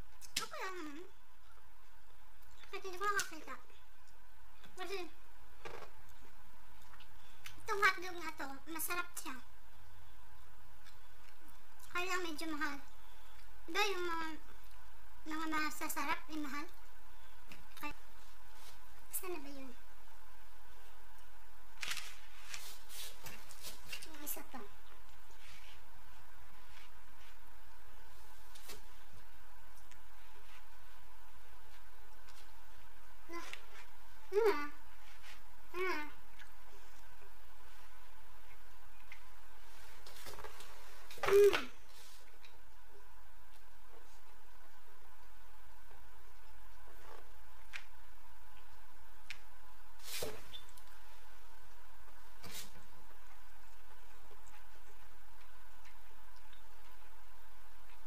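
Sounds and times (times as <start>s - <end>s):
background hiss: 0.0s - 58.0s
steady low hum: 0.0s - 58.0s.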